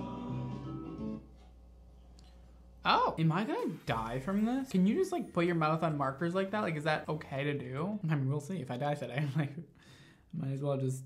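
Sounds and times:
background music: 0.0 - 1.3.

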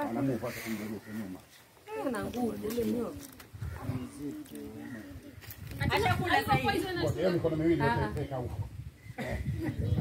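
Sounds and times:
men talking quietly: 0.0 - 10.0.

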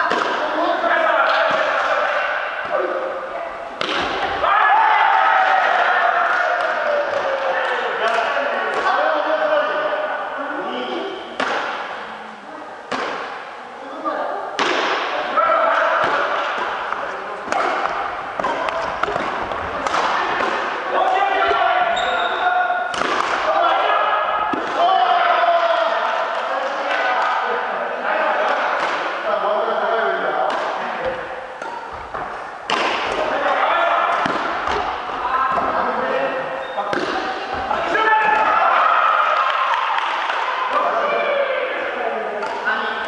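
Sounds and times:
players' voices: 0.0 - 43.0
rackets striking shuttlecock: 3.8 - 4.4, 11.4 - 12.0, 12.9 - 13.4, 15.8 - 20.9, 22.9 - 23.5, 30.4 - 33.3, 34.1 - 35.7, 42.4 - 42.7.

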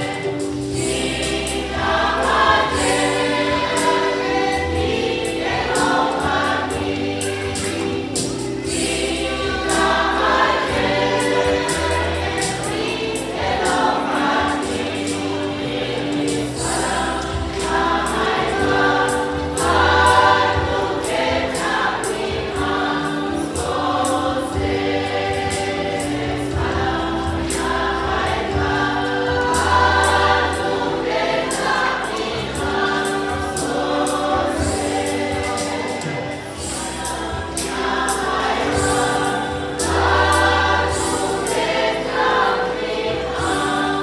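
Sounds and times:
choir singing a hymn: 0.0 - 44.0.

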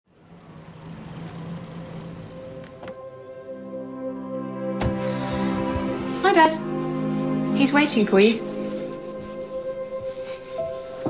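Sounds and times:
car engine idling: 0.0 - 3.6.

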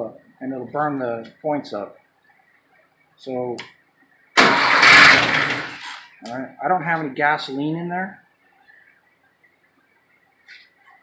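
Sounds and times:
engine cranking by starter motor: 4.4 - 6.1.

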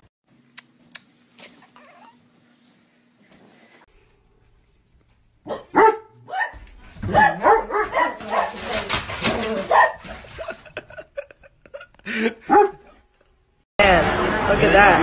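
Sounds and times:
large dog barking: 5.5 - 10.1, 12.5 - 12.9.

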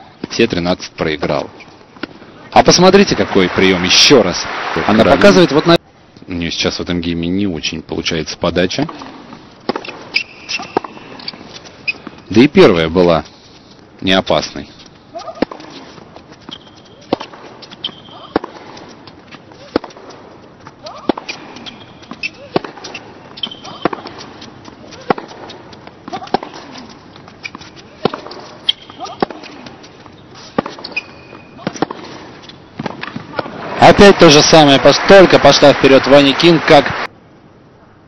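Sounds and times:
tennis ball struck by racket: 8.8 - 11.4, 17.0 - 19.0, 19.6 - 26.8, 27.5 - 29.8, 30.4 - 33.6
tennis ball bouncing: 8.8 - 12.3, 15.1 - 33.7
shoe squeaks on court: 9.7 - 12.4, 14.8 - 19.8, 20.8 - 32.8.

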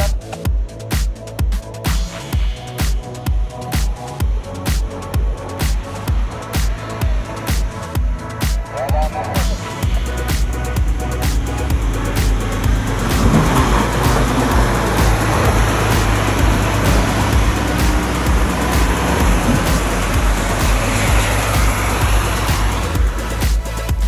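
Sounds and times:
electronic music with steady beat: 0.0 - 24.0
four-wheel drive engine climbing: 0.0 - 24.0.

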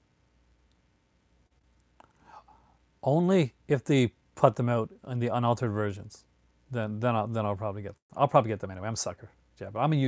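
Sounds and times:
man breathing softly: 2.0 - 2.9.

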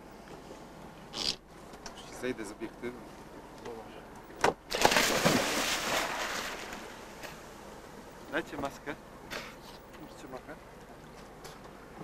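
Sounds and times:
loud splash into water: 4.7 - 6.8
churning fizzing water: 4.8 - 6.9.

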